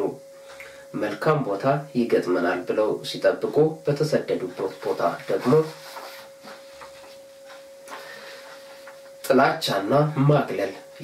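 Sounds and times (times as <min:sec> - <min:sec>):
thin electronic hum: 0:00.0 - 0:11.0.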